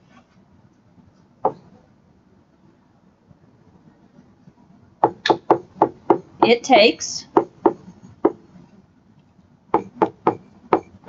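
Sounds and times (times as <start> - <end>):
stylus tapping on tablet screen: 5.0 - 6.3, 9.8 - 11.0.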